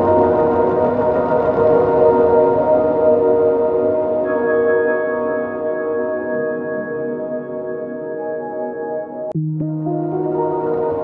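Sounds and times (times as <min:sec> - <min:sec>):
ambient music of held chords: 0:00.0 - 0:11.0.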